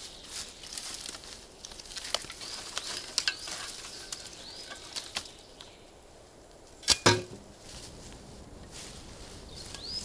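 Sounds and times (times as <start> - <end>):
twigs crackling and snapping: 0.0 - 5.8
shovel stabbing into ground: 6.8 - 7.3.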